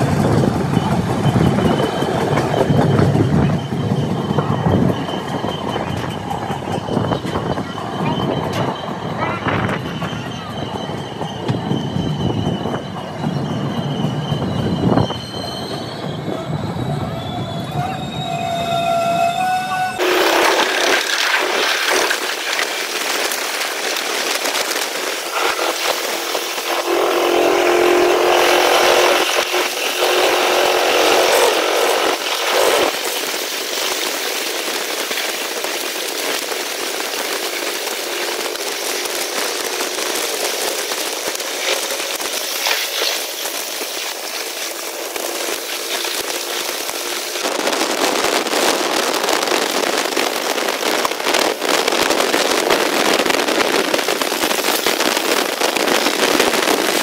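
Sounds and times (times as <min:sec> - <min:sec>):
passenger train rumble: 0:00.0 - 0:57.0
rush of wheels and wind: 0:00.0 - 0:57.0
train whining tones: 0:00.0 - 0:57.0.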